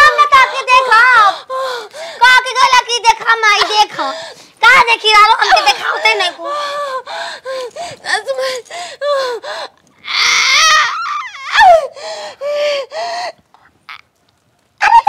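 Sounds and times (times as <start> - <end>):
woman screaming: 10.0 - 11.9
woman crying and wailing: 10.1 - 13.0.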